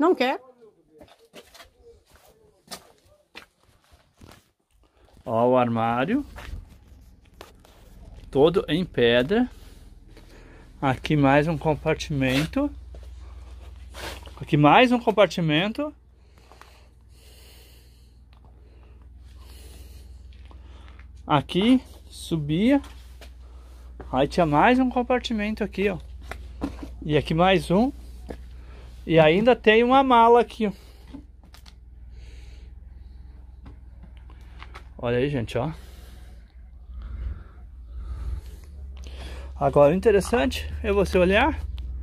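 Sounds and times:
footsteps on stone and dirt: 0:00.9 - 0:16.8, 0:18.4 - 0:31.8, 0:33.4 - 0:35.0, 0:38.0 - 0:41.8
low hum: 0:05.6 - 0:42.0
faint breathing: 0:06.2 - 0:11.8, 0:12.7 - 0:14.4, 0:16.0 - 0:22.2, 0:22.8 - 0:24.2, 0:27.9 - 0:29.1, 0:30.5 - 0:35.0, 0:35.6 - 0:39.7.

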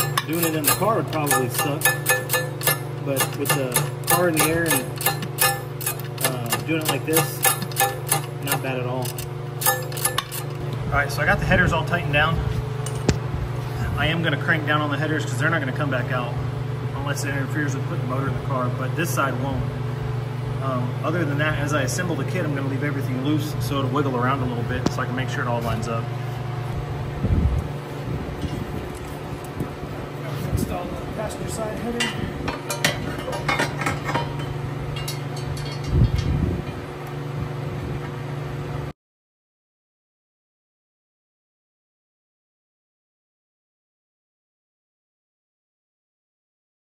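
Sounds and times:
metallic clinks of tools: 0:00.0 - 0:10.6, 0:32.0 - 0:36.4
steady low hum: 0:00.0 - 0:38.9.

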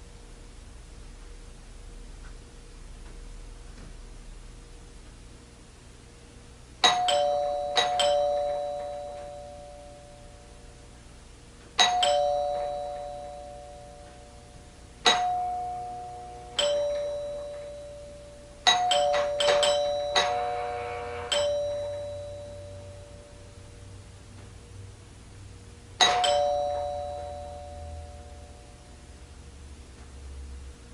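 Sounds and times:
two-note doorbell chime: 0:06.8 - 0:10.7, 0:11.8 - 0:23.9, 0:26.0 - 0:29.1.

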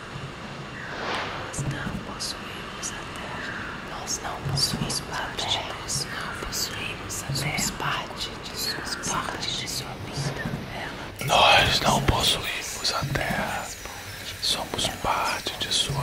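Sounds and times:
voices whispering: 0:01.5 - 0:16.0.

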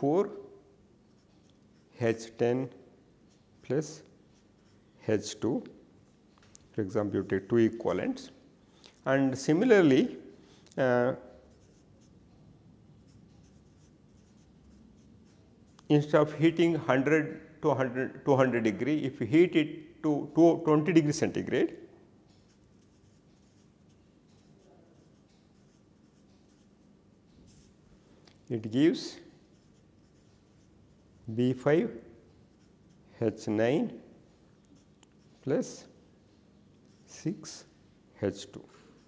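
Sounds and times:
marker writing on paper: 0:11.4 - 0:12.2, 0:13.0 - 0:15.8, 0:22.3 - 0:27.8, 0:29.4 - 0:31.2, 0:32.3 - 0:33.2.

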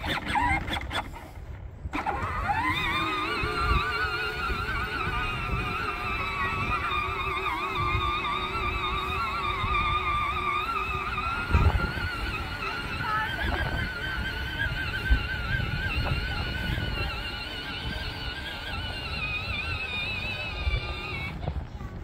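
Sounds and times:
electric toy vehicle motor whining: 0:00.0 - 0:22.0.

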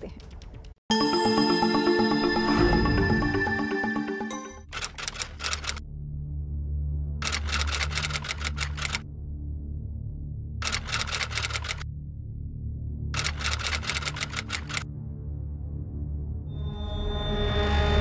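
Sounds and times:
low music drone: 0:00.9 - 0:04.7.

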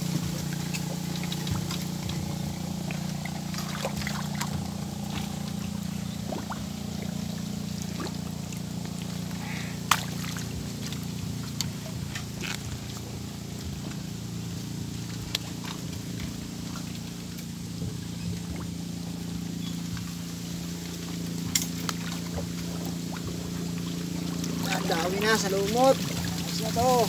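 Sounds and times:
low motor drone: 0:00.0 - 0:27.0.

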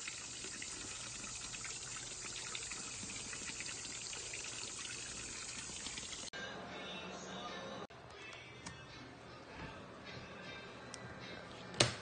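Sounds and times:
fountain water splashing into pool: 0:00.0 - 0:06.3.

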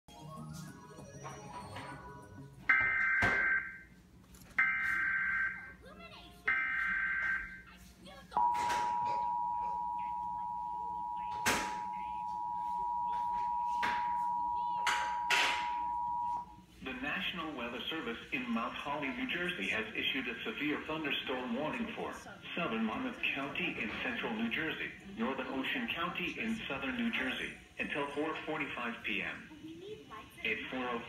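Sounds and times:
two-tone alert signal: 0:02.7 - 0:03.8, 0:04.6 - 0:05.6, 0:06.5 - 0:07.6, 0:08.4 - 0:16.5.

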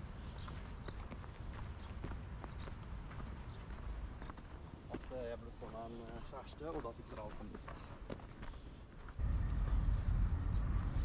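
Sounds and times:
footsteps on packed snow: 0:00.0 - 0:11.0
low steady rumble: 0:09.2 - 0:11.0.

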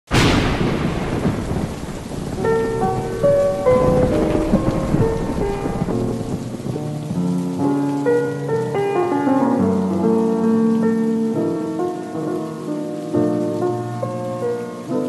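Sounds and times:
steady rain: 0:00.1 - 0:15.0
thunderclap rumbling: 0:00.1 - 0:15.0.

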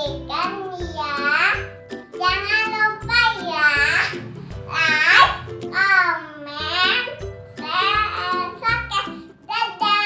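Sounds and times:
background music: 0:00.0 - 0:10.0
girl singing: 0:00.0 - 0:10.0.

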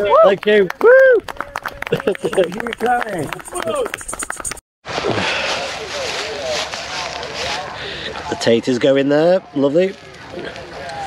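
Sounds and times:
wood fire crackling: 0:09.5 - 0:11.0.

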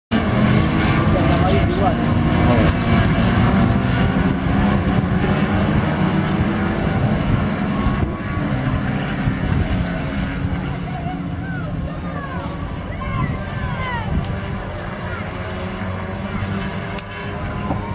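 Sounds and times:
race car engines revving high: 0:00.1 - 0:17.9.

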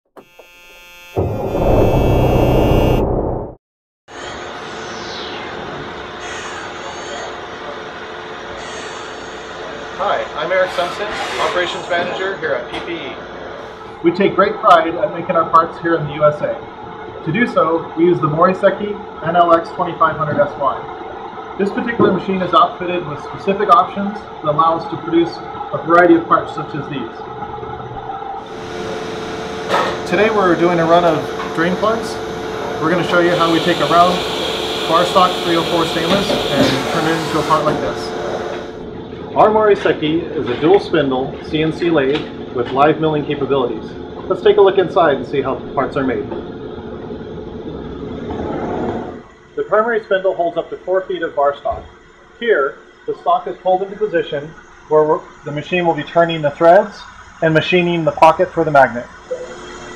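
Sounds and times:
machine shop hum: 0:00.2 - 0:59.9
loud rushing sound effect: 0:04.2 - 0:06.9
music intro sting: 0:04.2 - 0:07.3.

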